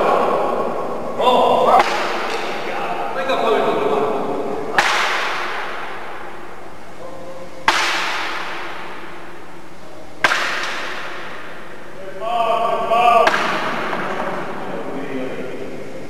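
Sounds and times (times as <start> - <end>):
sharp impacts on a board: 1.7 - 2.6, 4.7 - 6.5, 7.6 - 9.3, 10.2 - 11.7, 13.2 - 14.7.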